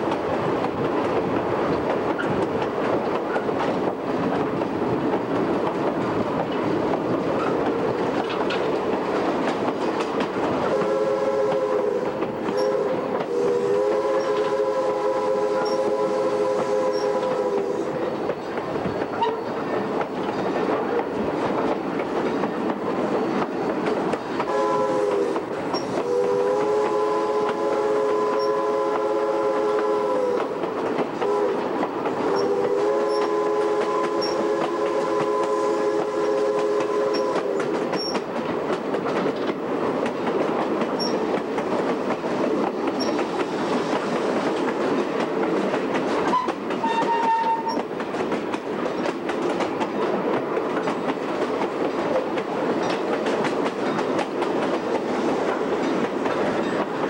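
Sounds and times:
train wheels clattering on rails: 0.0 - 57.0
steam locomotive whistle: 10.6 - 18.2, 24.4 - 30.6, 31.2 - 38.2, 46.2 - 47.9.

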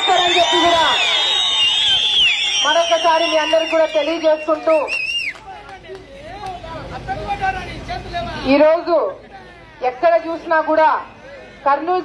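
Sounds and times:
background chatter: 4.1 - 12.0.

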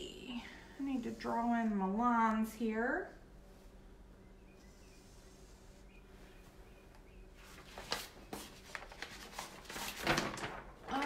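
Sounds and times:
faint steady hum: 0.0 - 11.0
paper crackles: 7.4 - 11.0
paper rustling and crinkling: 7.4 - 11.0.

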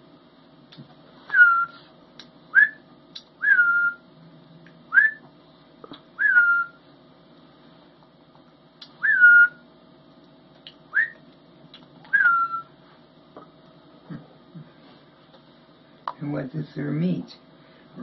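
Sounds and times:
young hawk whistled calls: 12.1 - 12.7.

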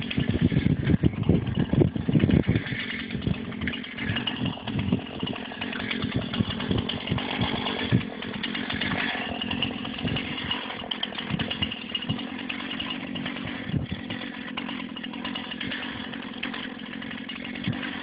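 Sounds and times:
chainsaw running: 0.0 - 18.0.

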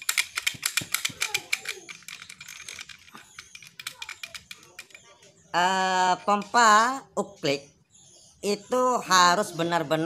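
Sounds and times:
metallic rattling of pump lever: 0.0 - 5.2.

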